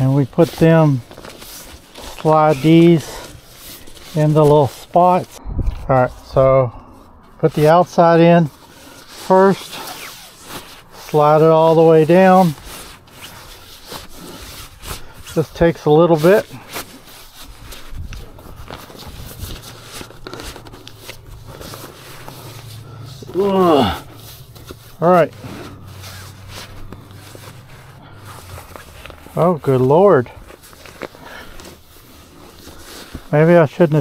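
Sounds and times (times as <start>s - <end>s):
board scraping against fabric: 8.5s - 34.0s.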